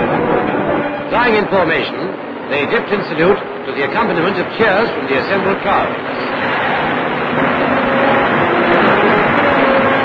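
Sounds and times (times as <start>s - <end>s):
aircraft engine drone: 0.0s - 10.0s.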